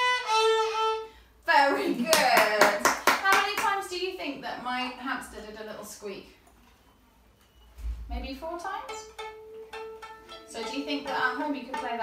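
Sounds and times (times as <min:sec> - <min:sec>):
quick hand clapping: 0:02.1 - 0:03.8.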